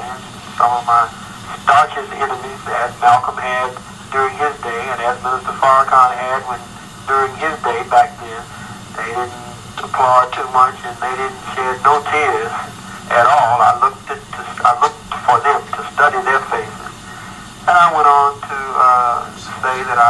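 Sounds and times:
person talking over radio: 0.0s - 20.0s.

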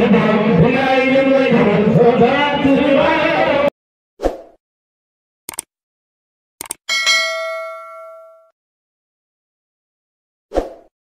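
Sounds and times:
notification bell ding: 6.9s - 8.5s.

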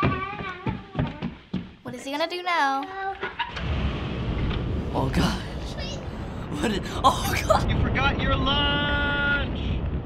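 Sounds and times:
low rumbling blast-off rush: 3.6s - 10.0s.

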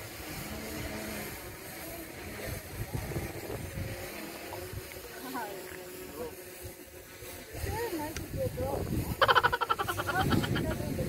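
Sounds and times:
wind buffeting microphone: 0.0s - 5.1s, 6.4s - 11.0s.

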